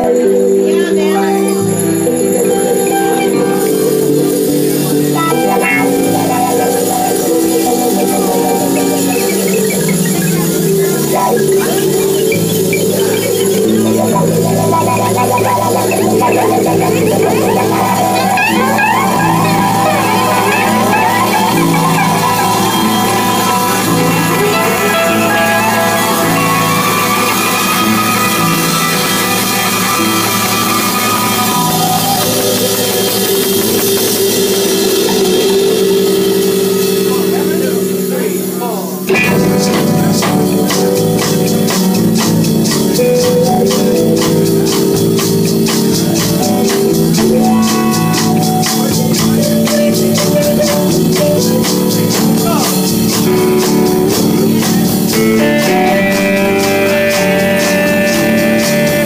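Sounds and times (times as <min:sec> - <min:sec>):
bass line: 0:00.0 - 0:59.0
congas: 0:00.0 - 0:59.0
cymbals: 0:00.0 - 0:59.0
electric guitars: 0:00.0 - 0:59.0
drum kit: 0:01.4 - 0:59.0.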